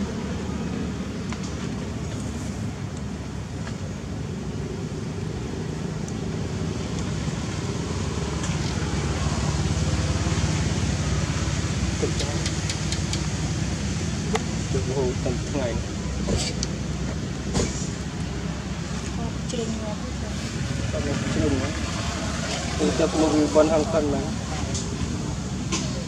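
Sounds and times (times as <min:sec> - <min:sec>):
sharp clicks: 0:12.4 - 0:13.3.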